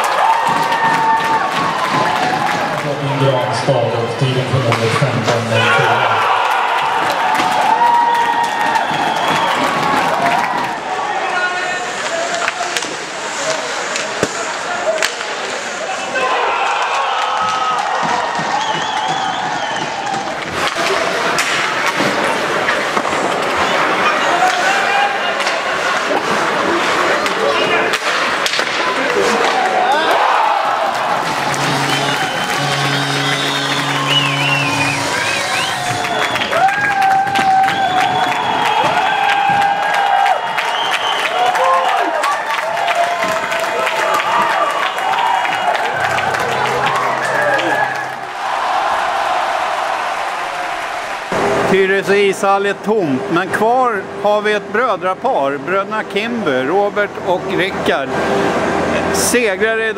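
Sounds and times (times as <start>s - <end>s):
players and spectators shouting: 5.4s - 21.4s, 23.5s - 28.0s, 28.7s - 51.7s
hockey sticks and puck clacking: 11.9s - 15.6s, 16.7s - 30.1s, 30.9s - 36.0s.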